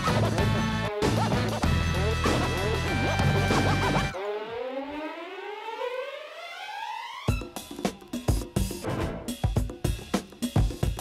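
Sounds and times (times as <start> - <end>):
hip-hop beat with heavy bass: 0.0 - 4.2.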